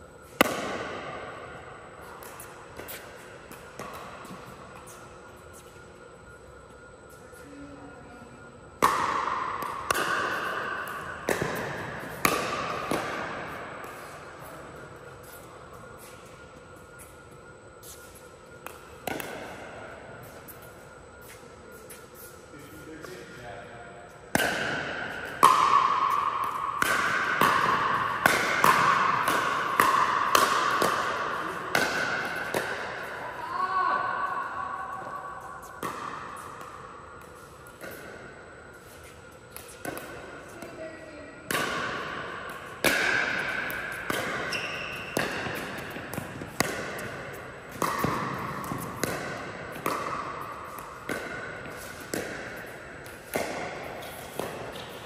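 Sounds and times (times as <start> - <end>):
ball bouncing on court: 0.3 - 1.2, 8.8 - 14.1, 18.6 - 19.6, 24.3 - 33.2, 35.7 - 38.2, 41.5 - 55.0.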